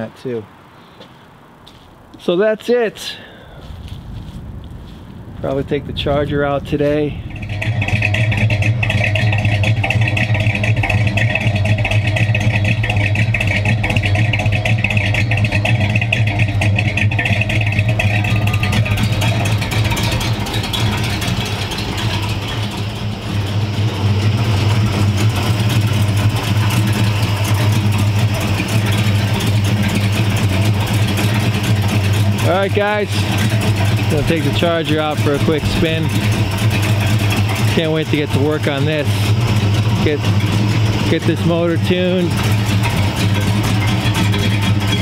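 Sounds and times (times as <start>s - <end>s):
car engine idling: 0.0s - 45.0s.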